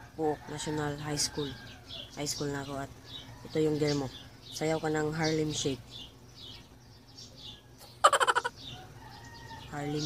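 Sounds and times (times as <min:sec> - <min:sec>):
small birds chirping: 0:00.0 - 0:10.0
rapid rattling bird call: 0:07.8 - 0:09.6.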